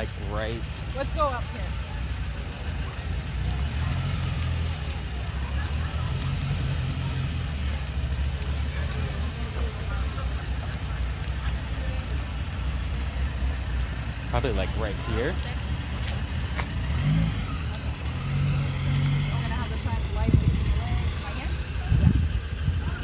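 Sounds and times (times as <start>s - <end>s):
car engine low rumble: 0.0s - 23.0s.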